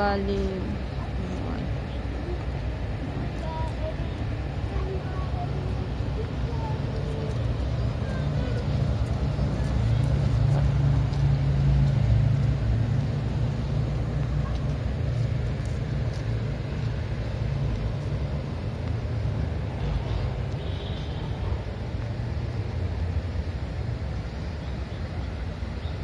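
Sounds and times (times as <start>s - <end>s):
low engine rumble: 0.0s - 26.0s
traffic noise: 0.0s - 26.0s.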